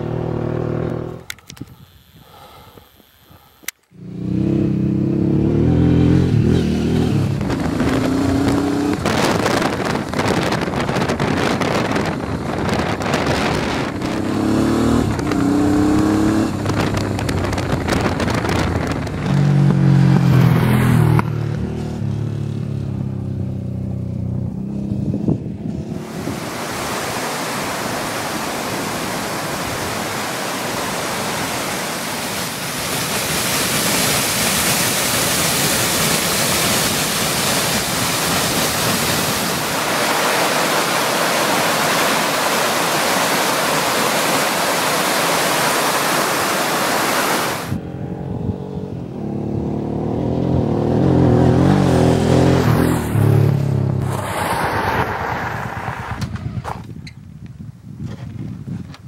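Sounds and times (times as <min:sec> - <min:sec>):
motorcycle engine running: 0:00.0 - 0:26.2
wind on microphone: 0:05.9 - 0:22.0, 0:24.1 - 0:59.0
water cascading down waterfall: 0:26.0 - 0:47.7.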